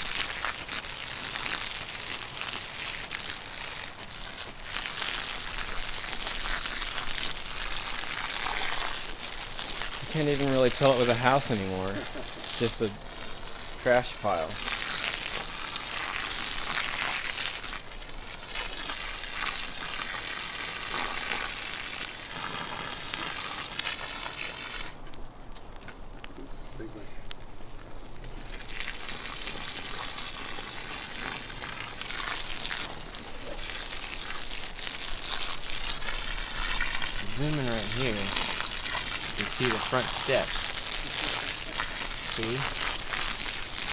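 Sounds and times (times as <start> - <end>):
fire crackling and hissing: 0.0 - 43.9.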